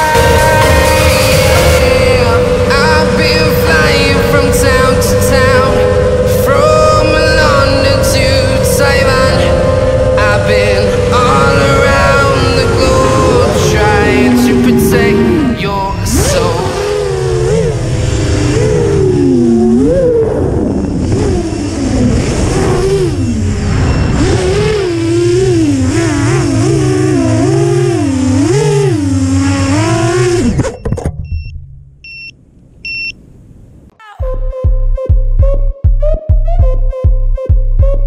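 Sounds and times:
music: 0:00.0 - 0:16.6, 0:33.9 - 0:38.0
quadcopter motors whining: 0:01.8 - 0:15.5, 0:16.2 - 0:30.8
short beeps: 0:30.6 - 0:33.2.

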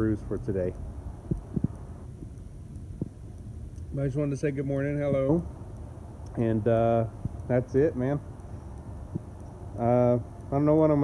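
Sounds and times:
wind rumble on microphone: 0:00.5 - 0:03.4, 0:09.0 - 0:09.5.

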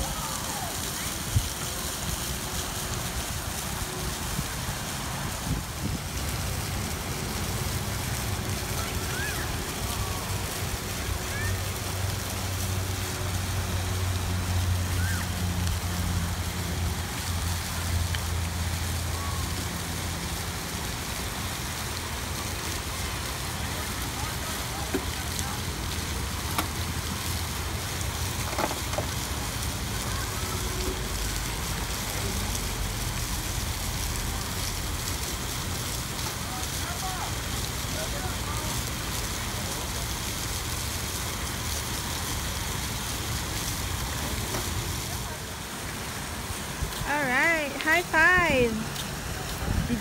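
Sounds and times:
water rushing from waterfall: 0:00.0 - 0:50.0.

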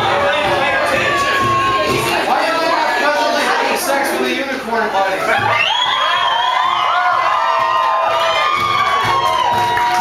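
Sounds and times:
audience cheering and shouting: 0:00.0 - 0:04.2, 0:04.9 - 0:10.0.

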